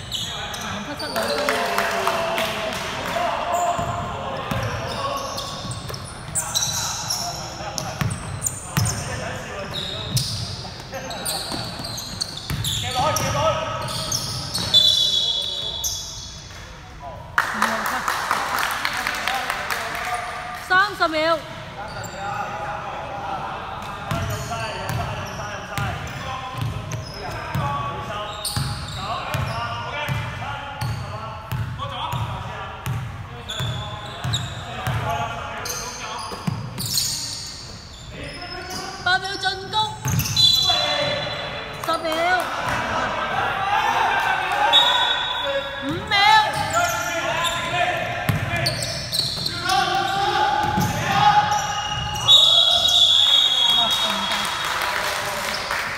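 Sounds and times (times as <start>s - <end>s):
shoe squeaks: 0.0s - 1.4s, 4.5s - 16.5s, 21.8s - 22.4s, 26.9s - 29.8s, 33.4s - 34.9s, 35.6s - 41.4s, 44.8s - 47.8s, 48.5s - 54.2s.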